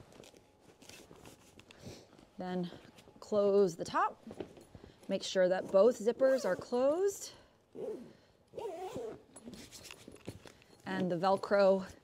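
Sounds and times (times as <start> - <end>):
bag zipping: 7.8 - 9.8.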